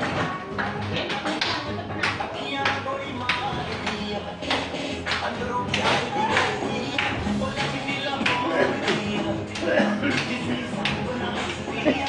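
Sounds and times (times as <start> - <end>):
background voices: 0.0 - 12.0
music: 0.0 - 12.0
people clapping in time: 0.6 - 11.6.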